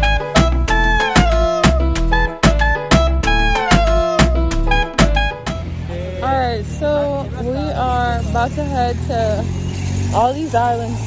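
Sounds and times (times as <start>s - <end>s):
music with a beat: 0.0s - 5.7s
low vehicle engine hum: 0.0s - 11.0s
people talking: 5.9s - 9.5s, 10.1s - 11.0s.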